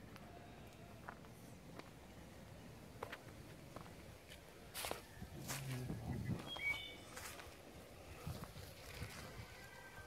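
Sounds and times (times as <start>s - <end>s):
footstep on gravel: 3.0s - 7.6s
person's low voice: 5.4s - 6.5s
whistled bird chirps: 6.3s - 7.1s.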